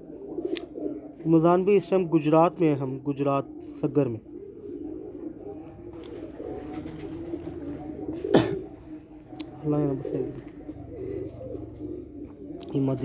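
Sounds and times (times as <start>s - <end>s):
pigeons cooing: 0.0s - 13.0s.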